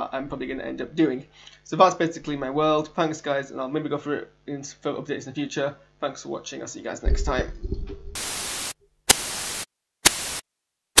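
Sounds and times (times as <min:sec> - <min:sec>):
static hiss bursts: 0:08.1 - 0:10.4.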